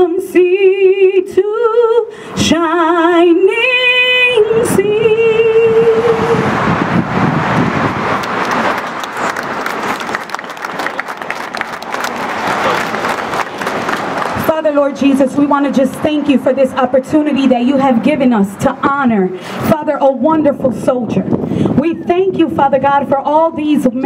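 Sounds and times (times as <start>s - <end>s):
crowd applause: 8.0s - 14.5s.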